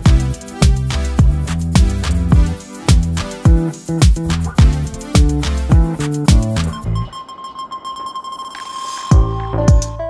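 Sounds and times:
steady high electronic tone: 2.3 - 9.7.

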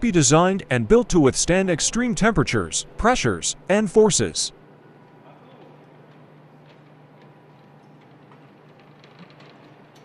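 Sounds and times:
low hum of machinery: 0.0 - 10.0.

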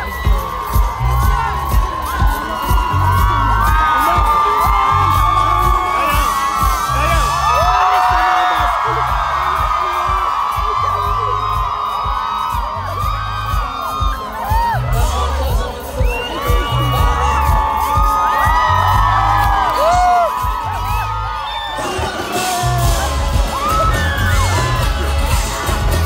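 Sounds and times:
bass beat: 0.0 - 26.0
crowd screaming and cheering: 0.0 - 26.0
loud band music: 0.0 - 26.0.

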